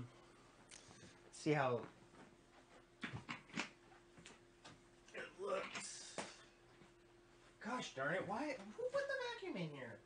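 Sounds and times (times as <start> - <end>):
faint steady hum: 0.0 - 10.0
objects knocking and rustling: 3.0 - 4.8.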